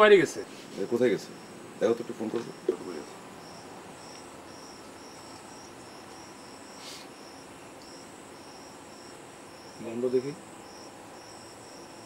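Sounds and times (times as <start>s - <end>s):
crickets chirping: 0.0s - 12.0s
faint hiss: 0.0s - 12.0s
soft rustle: 0.4s - 1.2s.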